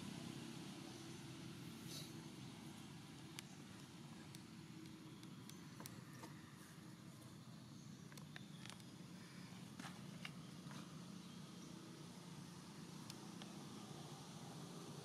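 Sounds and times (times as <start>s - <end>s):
faint clicks: 13.0s - 13.6s.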